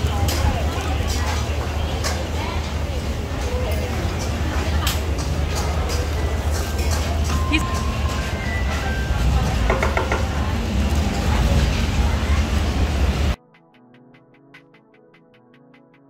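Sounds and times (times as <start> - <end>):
background chatter: 0.0 - 13.4
faint music: 0.0 - 16.0.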